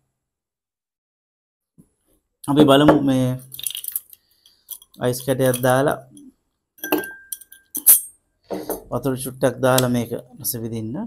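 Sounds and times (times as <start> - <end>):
glass ringing: 6.8 - 8.8
tongs clinking into ice glass: 6.8 - 8.8.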